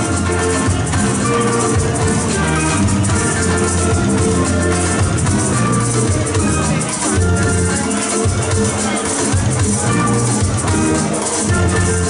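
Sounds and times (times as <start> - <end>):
bass guitar: 0.0 - 12.0
maraca rattle: 0.0 - 12.0
strummed acoustic guitar: 0.0 - 12.0.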